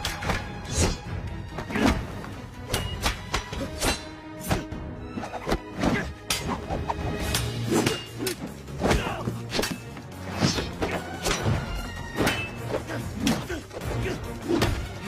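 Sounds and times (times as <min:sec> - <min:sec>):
fight scene music: 0:00.0 - 0:15.0.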